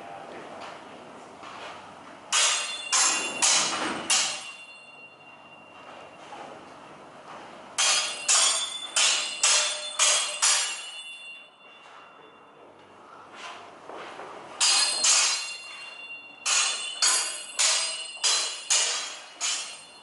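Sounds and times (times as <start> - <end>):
sword blades clashing: 2.3 - 5.0, 7.8 - 11.3, 14.6 - 20.0.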